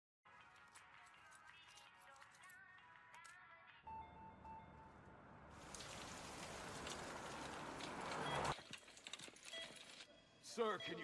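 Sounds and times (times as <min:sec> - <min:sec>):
two-beep tone: 0:10.6 - 0:11.0.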